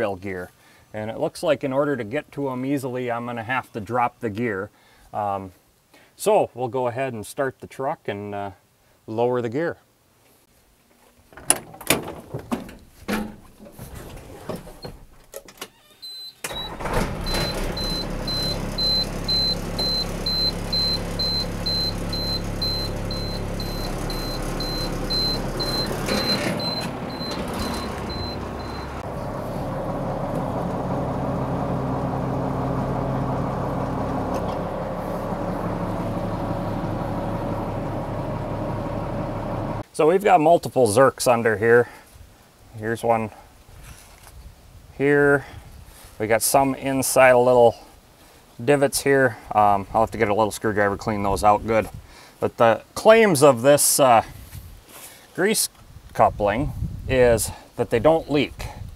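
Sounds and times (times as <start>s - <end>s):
knocks and clatter: 11.3s - 15.6s, 25.6s - 29.0s
rapid high-pitched warning beeps: 16.6s - 28.9s
truck engine running: 16.6s - 39.8s.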